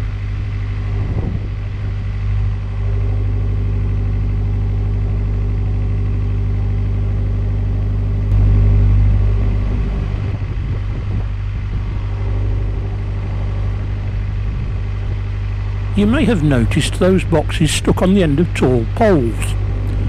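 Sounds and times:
diesel engine humming: 0:00.0 - 0:20.0.

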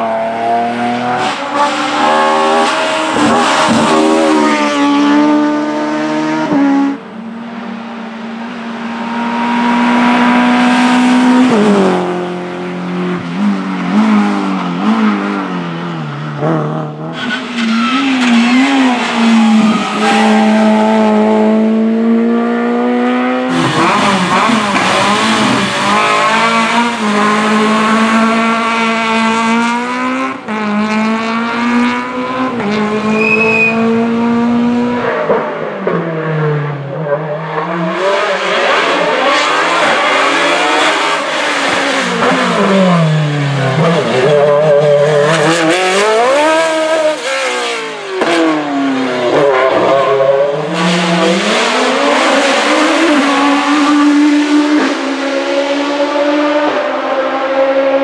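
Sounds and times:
race car engine at high revs: 0:00.0 - 0:58.0
race car engine revving and dropping: 0:00.0 - 0:58.0.

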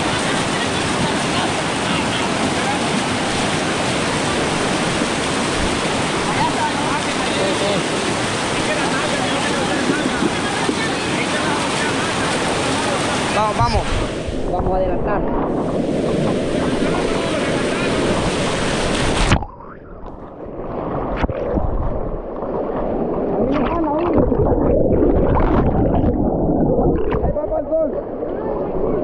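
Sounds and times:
river rapids rushing: 0:00.0 - 0:14.3
underwater gurgling rush: 0:00.0 - 0:29.0
water splashes: 0:00.0 - 0:29.0.

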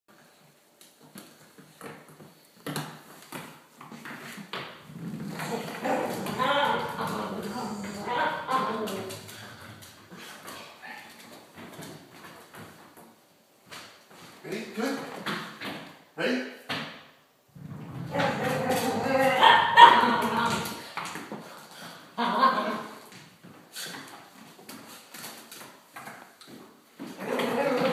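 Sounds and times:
voices: 0:05.0 - 0:09.9, 0:17.8 - 0:20.9.

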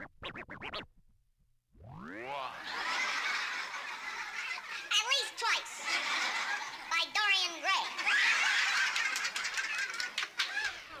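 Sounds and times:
people laughing and chattering: 0:05.6 - 0:07.0, 0:07.8 - 0:11.0.

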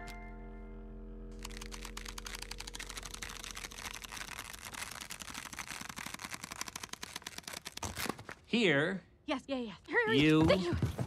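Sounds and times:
low steady hum: 0:00.0 - 0:05.5
paper tearing along perforation: 0:01.4 - 0:08.4.

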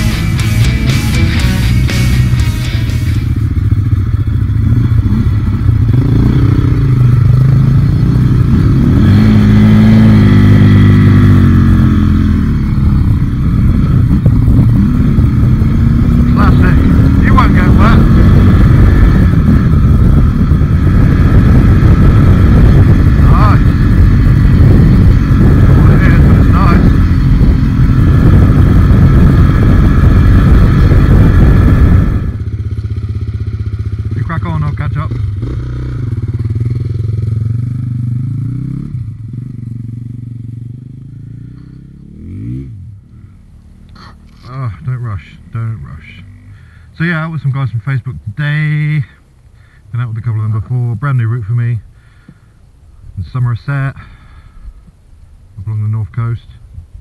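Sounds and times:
motorcycle engine revving: 0:00.0 - 0:47.7.

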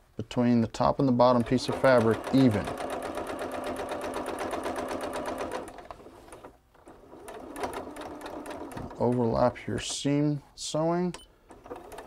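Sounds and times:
sewing machine stitching: 0:01.3 - 0:09.6, 0:11.5 - 0:12.0.

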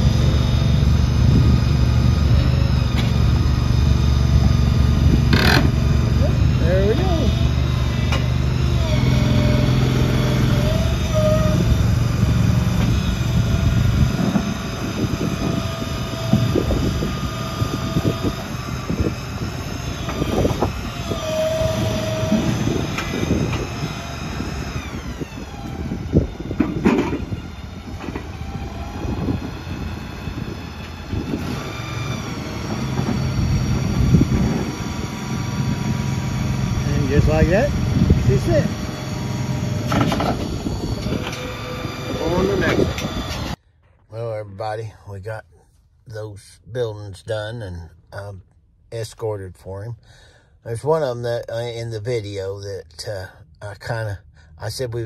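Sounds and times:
engine humming: 0:00.0 - 0:46.0.

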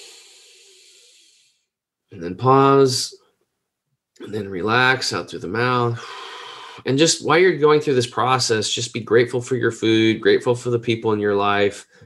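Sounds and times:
man breathing in through nose: 0:00.0 - 0:01.6, 0:06.0 - 0:06.8.

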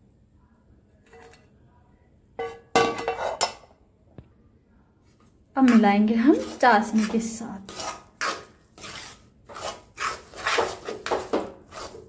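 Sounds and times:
spoon scraping metal pan: 0:01.1 - 0:01.4, 0:02.4 - 0:03.6, 0:05.6 - 0:12.0.

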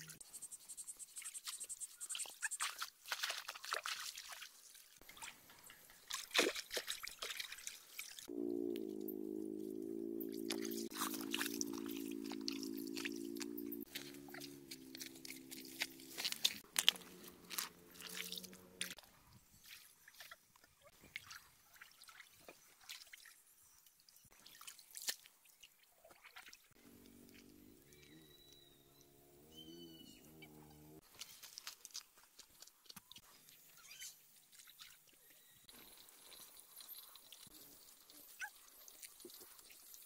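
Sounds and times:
water splashing and dripping: 0:01.4 - 0:19.0, 0:19.6 - 0:27.5, 0:34.4 - 0:40.0
low hum: 0:08.3 - 0:19.0
wading steps: 0:10.4 - 0:19.0.

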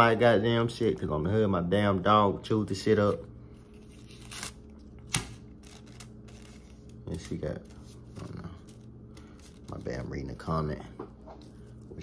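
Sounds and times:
faint steady hum: 0:00.0 - 0:12.0
paper snapping: 0:04.1 - 0:06.6
paper rustling: 0:05.2 - 0:10.4.

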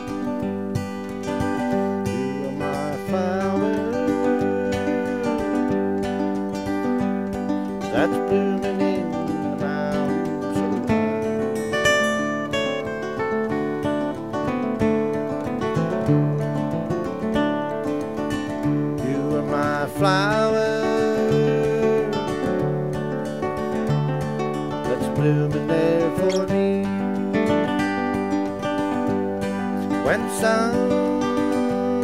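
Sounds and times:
acoustic guitars playing: 0:00.0 - 0:32.0.

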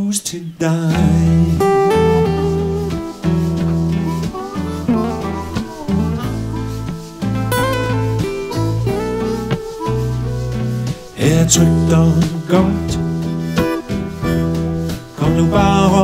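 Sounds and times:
blues guitar picking: 0:00.9 - 0:16.0.

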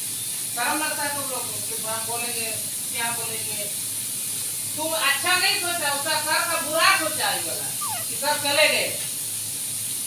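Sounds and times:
steady high hiss: 0:00.0 - 0:10.0
person talking: 0:04.9 - 0:08.9.

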